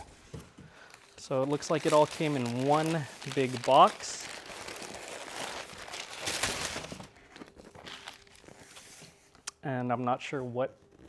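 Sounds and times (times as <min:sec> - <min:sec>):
packing paper rustling and crinkling: 0:00.0 - 0:09.4.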